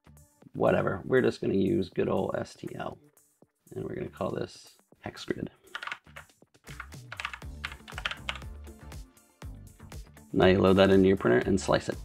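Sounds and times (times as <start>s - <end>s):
background music: 0.0s - 12.0s
keyboard typing clicks: 5.8s - 8.5s.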